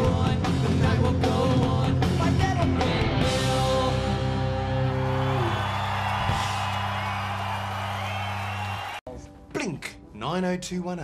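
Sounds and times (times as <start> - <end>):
crowd cheering and whooping: 4.5 - 9.0.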